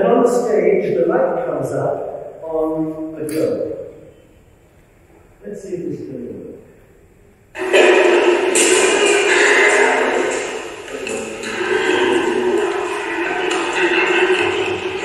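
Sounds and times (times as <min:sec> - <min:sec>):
voices over loudspeakers: 0:00.0 - 0:04.2, 0:07.6 - 0:15.0
music over loudspeakers: 0:07.5 - 0:15.0.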